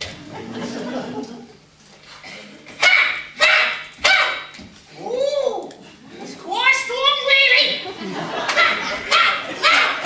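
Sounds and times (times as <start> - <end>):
person crying out: 5.0 - 5.7
people yelling: 6.6 - 10.0.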